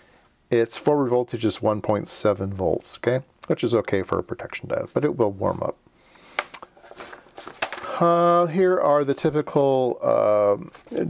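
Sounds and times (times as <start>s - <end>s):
paper sheets rustling: 6.8s - 8.1s.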